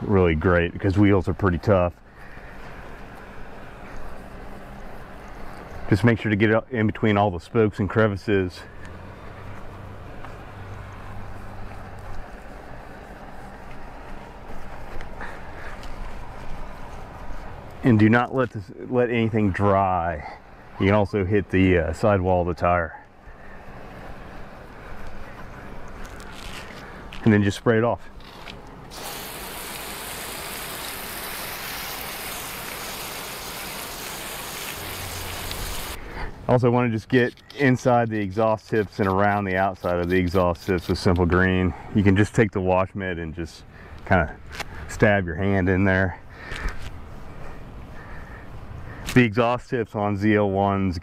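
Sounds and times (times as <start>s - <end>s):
outdoor background noise: 0.0s - 51.0s
wash mitt scrubbing a wheel: 0.1s - 22.9s, 29.0s - 42.6s
hose nozzle spraying water: 28.9s - 36.0s.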